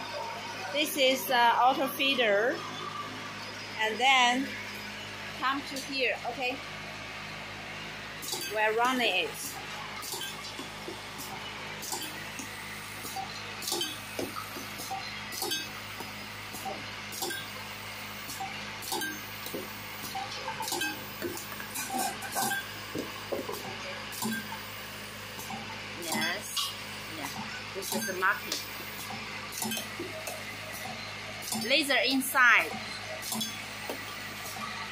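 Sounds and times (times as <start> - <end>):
vibratory bowl feeder hum: 0.0 - 34.9.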